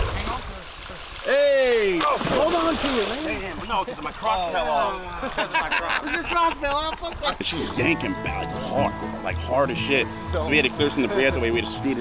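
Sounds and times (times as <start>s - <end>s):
water splashing and running off: 0.0s - 5.4s.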